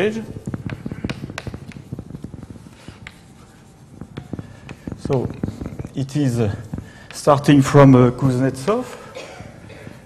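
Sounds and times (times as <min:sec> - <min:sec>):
chalk scratching on chalkboard: 0:00.0 - 0:08.9.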